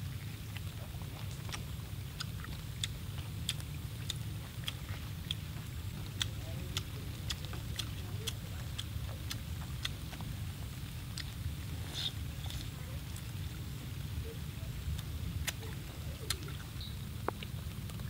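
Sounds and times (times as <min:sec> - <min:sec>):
steady low rumble: 0:00.0 - 0:18.0
wet chewing mouth clicks: 0:00.0 - 0:18.0.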